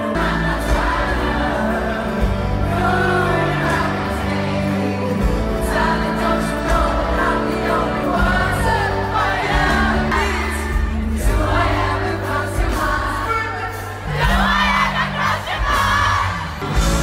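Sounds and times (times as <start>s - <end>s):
crowd singing along: 0.0s - 17.0s
pop-rock band playing loudly: 0.0s - 17.0s
singing voices: 0.0s - 17.0s.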